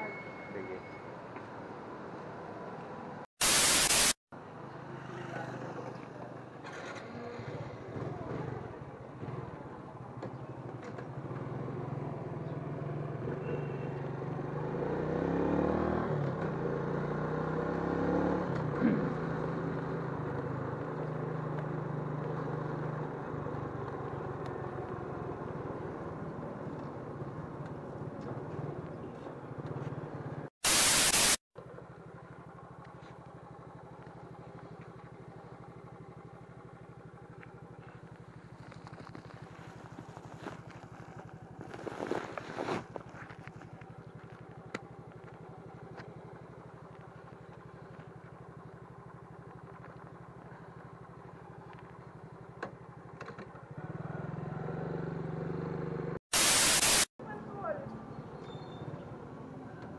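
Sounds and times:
loud burst of hiss: 3.4s - 4.2s, 30.6s - 31.4s, 56.3s - 57.1s
motorcycle engine running: 31.6s - 56.1s.

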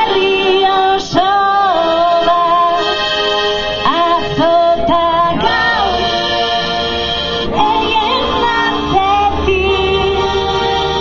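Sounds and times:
woman singing: 0.0s - 3.0s, 3.8s - 6.3s, 7.5s - 11.0s
sustained synthesizer tones: 0.0s - 11.0s.

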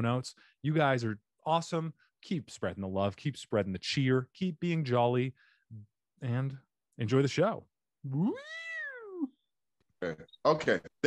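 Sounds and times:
meow-like cry: 8.3s - 9.3s.

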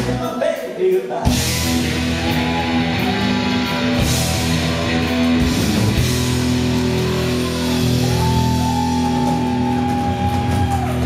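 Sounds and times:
country band playing: 0.0s - 11.0s.

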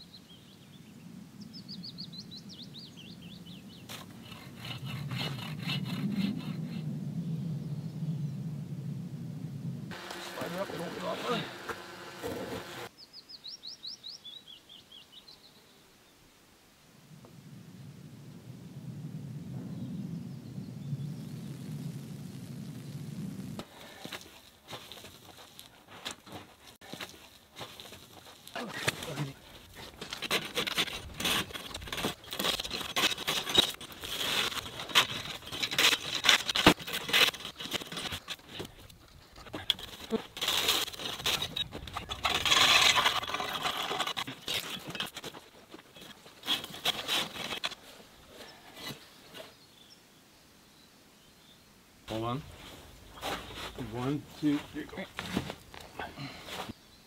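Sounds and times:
tool scraping and knocking ice: 9.9s - 12.9s, 23.6s - 47.8s.

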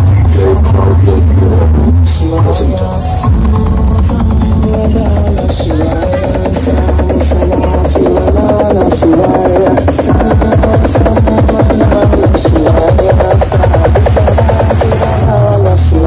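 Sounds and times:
loud electronic dance music: 0.0s - 16.0s.

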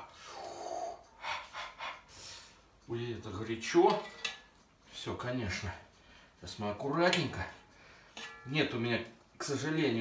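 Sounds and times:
short hissing breaths: 0.2s - 2.6s.

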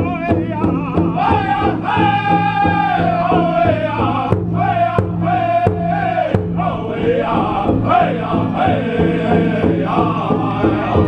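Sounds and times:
fast beat on big drum: 0.0s - 11.0s
men singing high: 0.0s - 11.0s.

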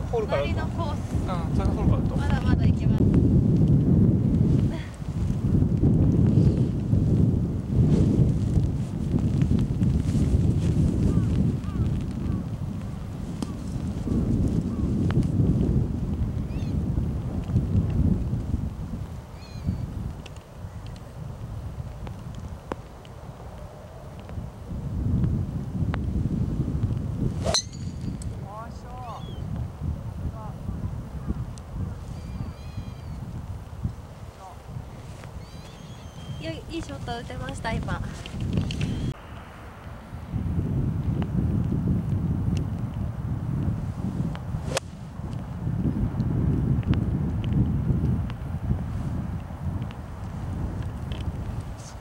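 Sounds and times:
wind rumbling on microphone: 0.0s - 52.0s
golf club hitting ball: 27.4s - 28.4s, 44.7s - 44.9s.

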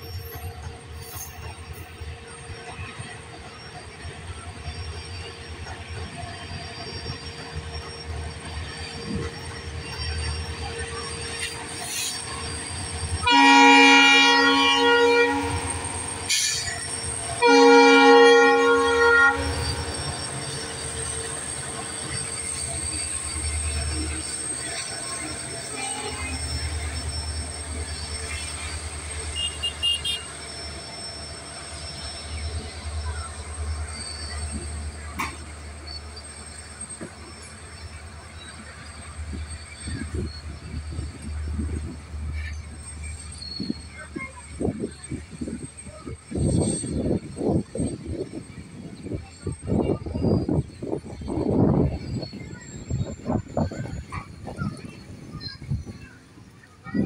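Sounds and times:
freight train rumbling past: 0.0s - 57.0s
diesel locomotive horn blasts: 13.1s - 16.7s, 17.3s - 20.1s, 29.0s - 30.6s.

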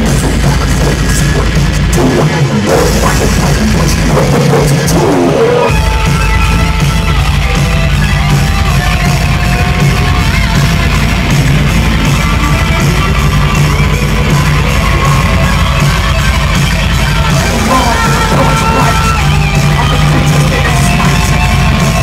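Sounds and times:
live heavy metal band: 0.0s - 22.0s.

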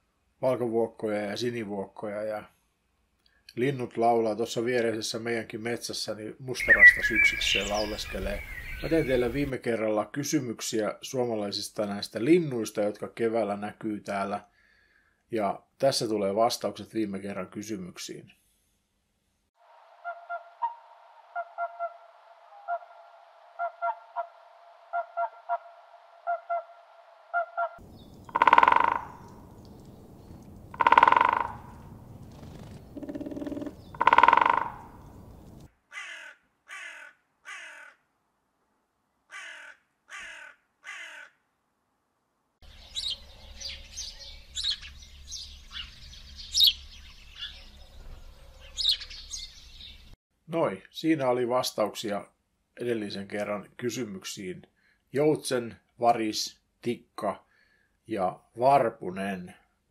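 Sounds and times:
sparrows chirping: 6.6s - 9.5s, 27.8s - 35.7s, 42.6s - 50.2s
woodpecker short sharp calls: 6.6s - 9.5s, 27.4s - 30.0s, 30.7s - 38.0s
swans calling: 20.0s - 23.0s, 27.3s - 31.9s, 32.9s - 35.5s
crow cawing: 27.4s - 29.3s, 30.7s - 31.8s, 33.0s - 35.1s, 35.9s - 38.0s, 39.3s - 41.4s.

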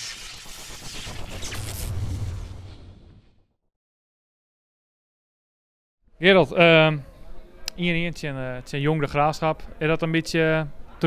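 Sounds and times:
rushing whoosh: 0.0s - 3.3s
deep rumbling boom: 1.0s - 3.4s.

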